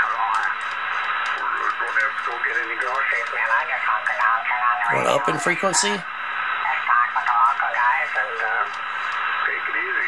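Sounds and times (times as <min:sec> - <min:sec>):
muffled radio voices: 0:00.0 - 0:10.0.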